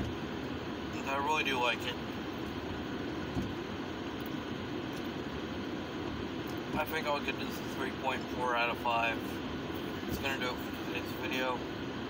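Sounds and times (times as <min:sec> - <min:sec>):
car cabin noise: 0:00.0 - 0:12.0.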